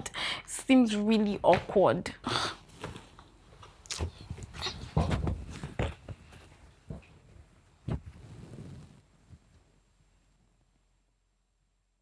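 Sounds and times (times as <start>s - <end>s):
bedclothes rustling: 2.6s - 9.5s.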